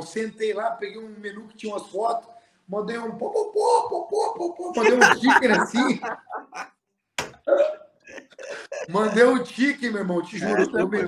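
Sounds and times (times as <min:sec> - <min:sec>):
man talking: 0:00.0 - 0:06.6, 0:08.4 - 0:11.0
man making vocal sounds: 0:03.2 - 0:06.7, 0:07.5 - 0:09.4, 0:10.3 - 0:11.0.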